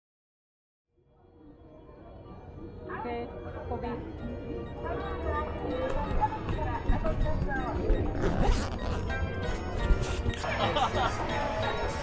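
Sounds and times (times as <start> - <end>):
background music: 1.0 - 12.0
cloth rustling against microphone: 8.1 - 10.4.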